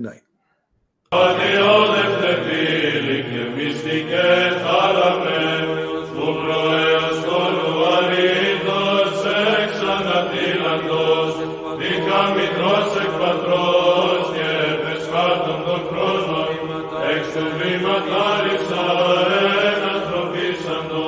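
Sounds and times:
church chant over drone: 1.1s - 21.0s.

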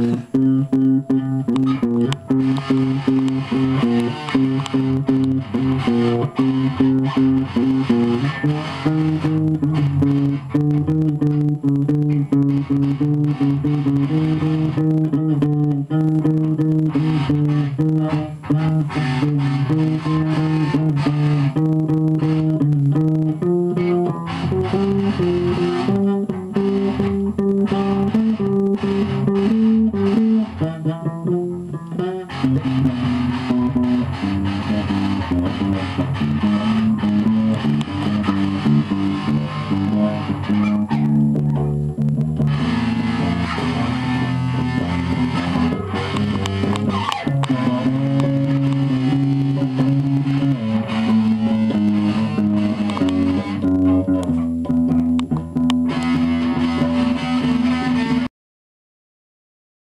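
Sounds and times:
electric guitars jamming: 0.0s - 58.3s.

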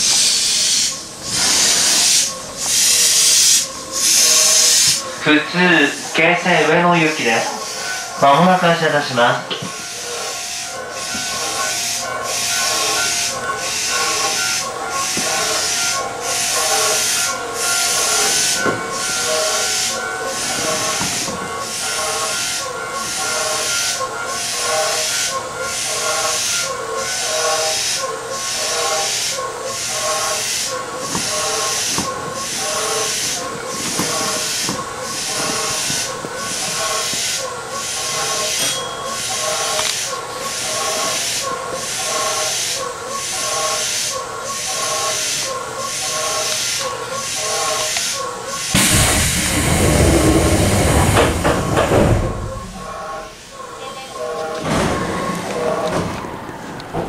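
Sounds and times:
wheel-on-rail hiss: 0.0s - 8.2s, 9.6s - 53.8s
traction motors whining: 0.0s - 57.0s.

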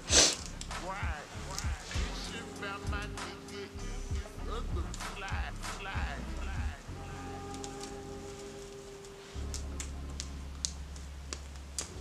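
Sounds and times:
deep bass: 0.4s - 7.2s.

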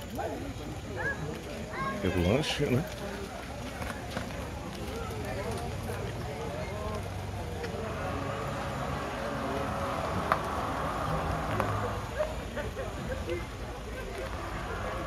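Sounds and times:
background chatter of people: 0.0s - 15.0s
car rolling slowly past: 2.4s - 15.0s.

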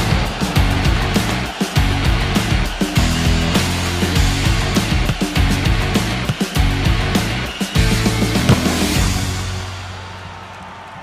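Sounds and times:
loud music with fast drum beat: 0.0s - 10.1s.

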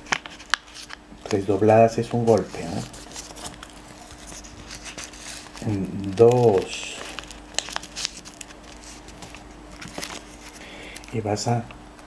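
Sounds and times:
paper crinkling being folded: 0.0s - 11.6s
faint steady hum: 0.0s - 12.0s.

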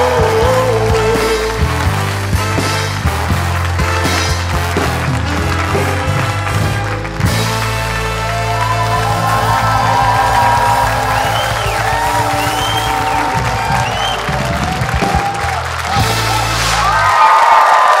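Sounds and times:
live band with bass notes: 0.0s - 17.4s
audience applause and cheering: 0.0s - 18.0s.

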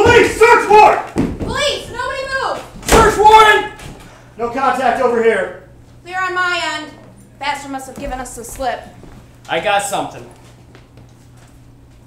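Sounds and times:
people shouting: 0.0s - 3.8s.

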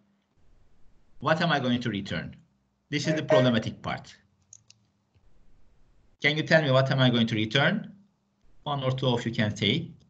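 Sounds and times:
faint short clicks: 4.4s - 4.9s.

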